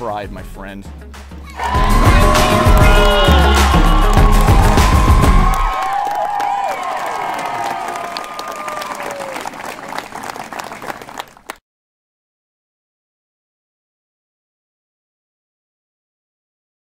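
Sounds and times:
music with heavy bass: 0:00.9 - 0:05.8
crowd applauding and cheering: 0:01.5 - 0:11.6.

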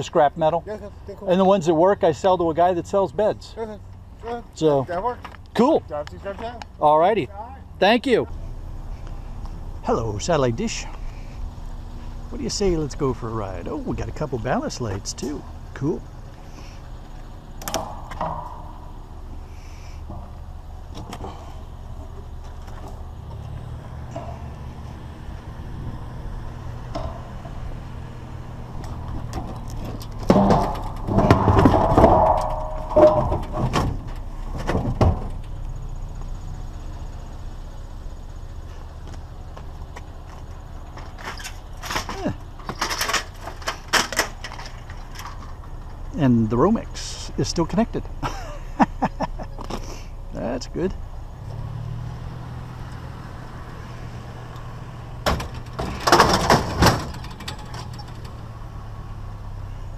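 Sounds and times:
steady low hum: 0:07.6 - 0:51.4
metal clanking and rattling: 0:17.2 - 0:35.6, 0:40.8 - 0:46.1, 0:55.2 - 0:58.6
light knocks and clatter: 0:28.8 - 0:35.7, 0:55.2 - 0:58.5.

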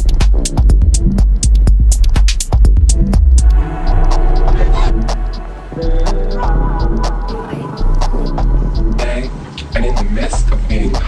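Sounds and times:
clicky percussion: 0:00.0 - 0:09.4
deep sustained bass notes: 0:02.6 - 0:10.7
synth lines: 0:02.9 - 0:09.0.

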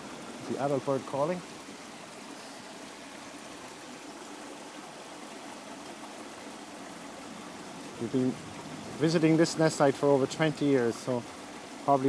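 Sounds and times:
fast-flowing river rushing: 0:00.0 - 0:12.0.

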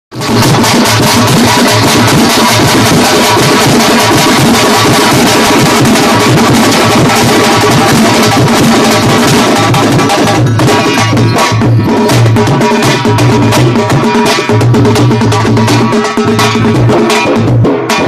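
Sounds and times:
folk drums fast rhythm: 0:00.1 - 0:18.0.

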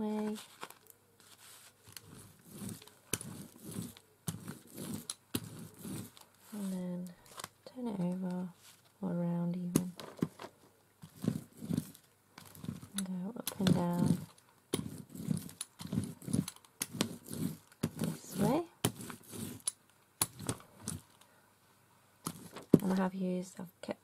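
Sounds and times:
woman's wordless voice: 0:00.0 - 0:00.4, 0:06.5 - 0:10.0, 0:12.9 - 0:14.3, 0:18.0 - 0:18.8, 0:22.8 - 0:24.0
brayer rolling through wet paint: 0:00.1 - 0:07.1, 0:11.0 - 0:21.2, 0:22.2 - 0:23.1.

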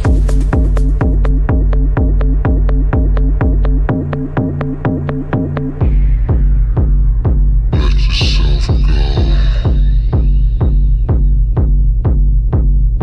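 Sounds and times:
deep bass line: 0:00.0 - 0:13.0
kick drum: 0:00.0 - 0:13.0
house dance music: 0:07.7 - 0:11.9.

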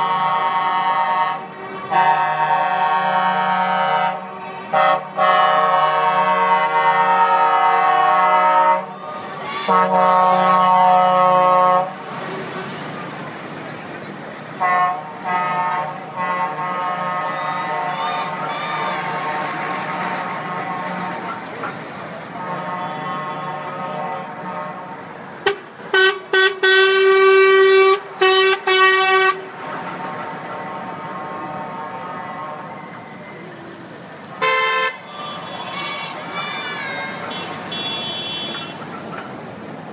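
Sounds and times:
truck air horns: 0:00.0 - 0:12.0, 0:14.6 - 0:21.5, 0:22.3 - 0:33.2, 0:34.4 - 0:38.9
crowd noise: 0:00.0 - 0:39.9
truck engines: 0:00.0 - 0:39.9.

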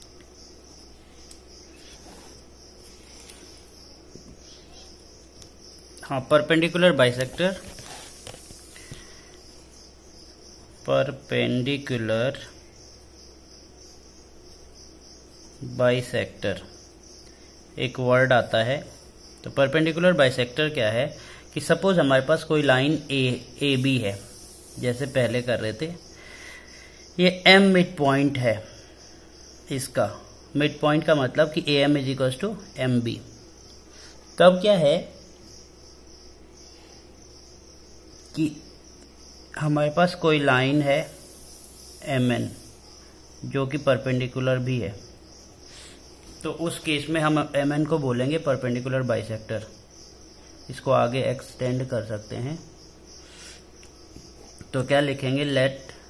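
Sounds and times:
crickets chirring: 0:00.0 - 0:56.0
faint low hum: 0:00.0 - 0:56.0
high-pitched insect trill: 0:00.0 - 0:56.0.

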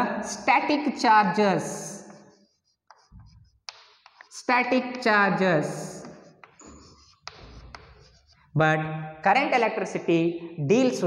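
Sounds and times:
chalk scratching on blackboard: 0:01.4 - 0:08.6
chalk tapping: 0:01.6 - 0:08.5.

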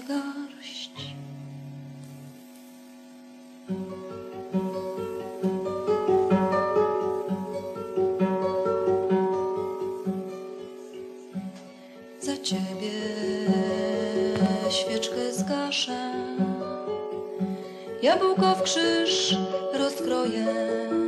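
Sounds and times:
plucked guitar: 0:03.2 - 0:21.0.

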